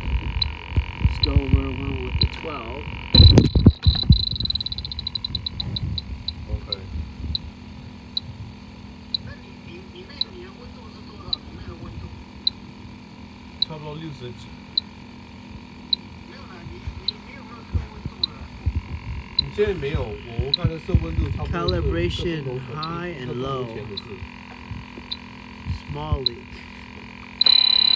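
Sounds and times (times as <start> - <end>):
short high electronic beeps: 3.0 - 7.5, 25.0 - 27.9.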